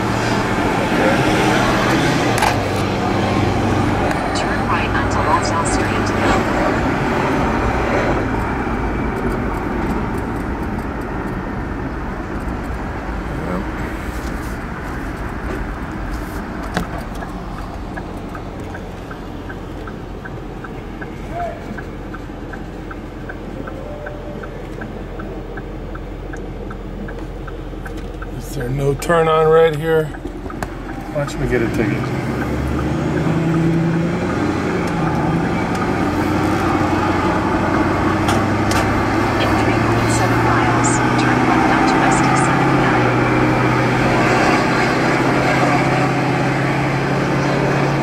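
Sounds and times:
car engine idle hum: 0:00.0 - 0:45.4
car engine and road noise: 0:00.0 - 0:48.0
turn signal clicking: 0:14.2 - 0:45.4.

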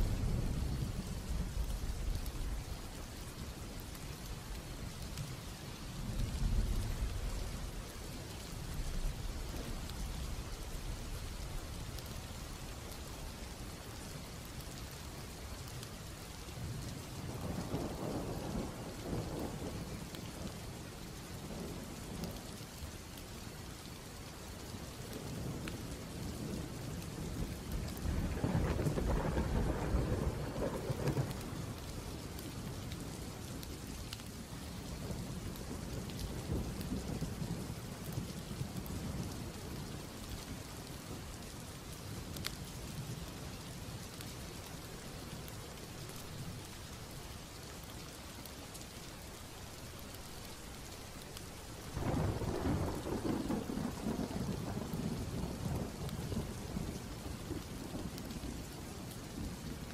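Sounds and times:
steady rain: 0:00.0 - 0:59.9
rolling thunder: 0:27.4 - 0:32.2, 0:51.9 - 0:58.2.

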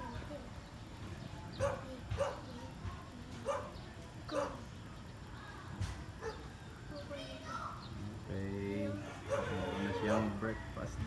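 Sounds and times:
dog barking: 0:01.6 - 0:02.6, 0:03.4 - 0:04.7, 0:06.2 - 0:06.5, 0:09.2 - 0:10.4.

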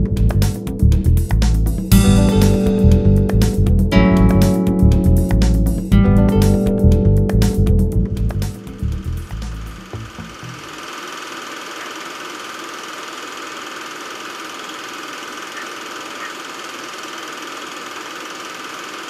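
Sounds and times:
strummed guitar music: 0:00.0 - 0:10.6.

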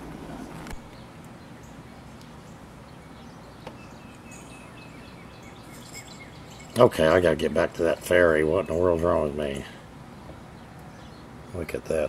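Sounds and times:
small birds chirping: 0:00.4 - 0:12.0.

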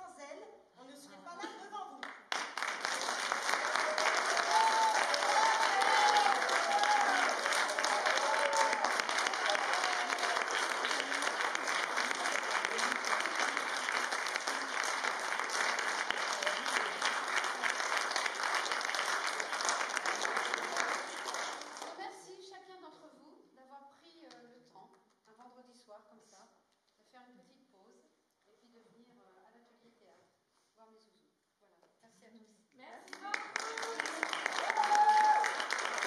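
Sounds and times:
audience applause: 0:02.3 - 0:22.0, 0:33.1 - 0:36.0.

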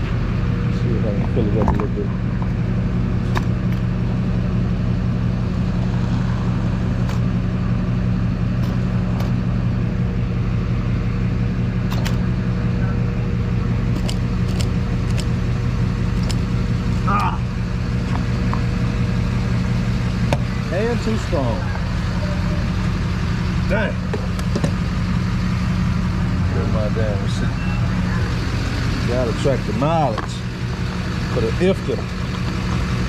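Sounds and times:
steady low hum: 0:00.0 - 0:33.0.

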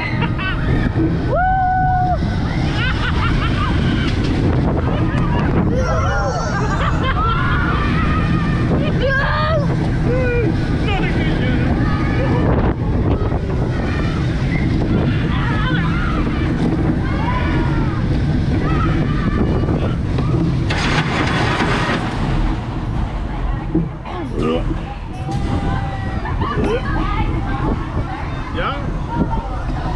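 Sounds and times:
riders shouting and screaming: 0:00.0 - 0:21.5
roller coaster rumbling on track: 0:00.0 - 0:29.9
wind buffeting microphone: 0:00.0 - 0:29.9.

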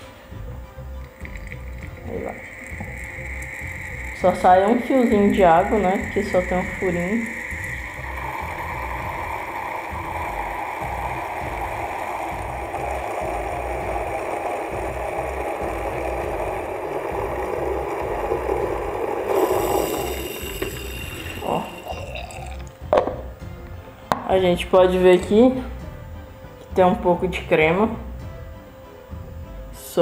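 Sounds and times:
coffee hissing through filter: 0:00.6 - 0:23.4.

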